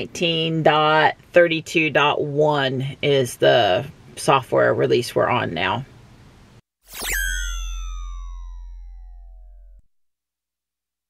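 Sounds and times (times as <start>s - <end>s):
synth tones gliding downward: 6.9s - 9.8s
synthesized bright sweep: 6.9s - 9.8s.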